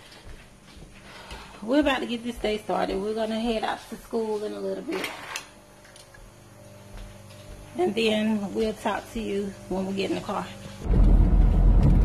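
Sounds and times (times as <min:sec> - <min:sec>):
low room hum: 0:00.0 - 0:12.0
window blinds clicking: 0:04.9 - 0:06.1.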